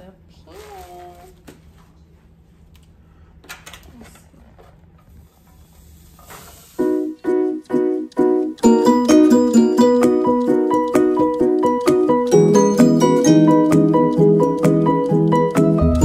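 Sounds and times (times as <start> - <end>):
background music with plucked notes: 7.3 - 16.0.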